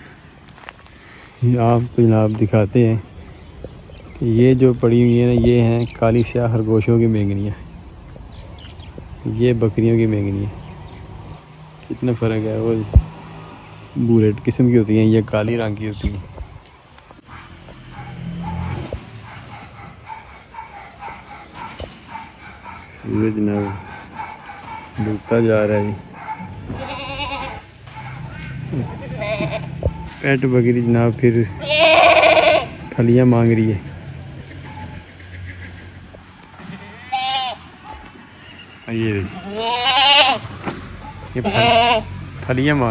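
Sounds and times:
goats bleating: 26.7 - 27.7, 29.0 - 29.8, 31.6 - 32.8, 36.6 - 37.7, 39.4 - 40.5, 41.4 - 42.1.

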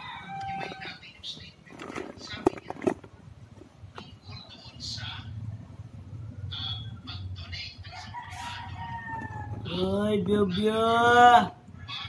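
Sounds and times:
rooster crowing: 0.0 - 1.0, 7.9 - 9.8.

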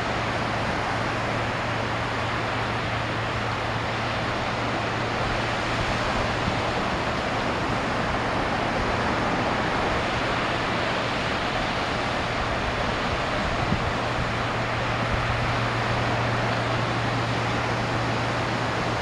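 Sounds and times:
low steady hum: 0.0 - 19.0
ocean surf: 0.0 - 19.0.

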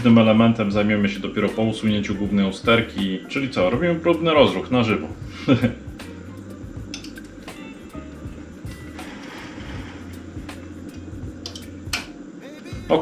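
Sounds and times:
steady low hum: 0.0 - 13.0
relay clicks: 10.9 - 12.2.

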